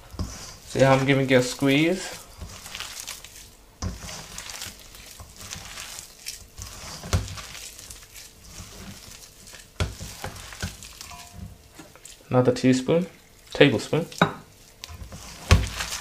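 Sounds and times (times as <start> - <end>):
hands mixing wet batter: 0.0 - 16.0.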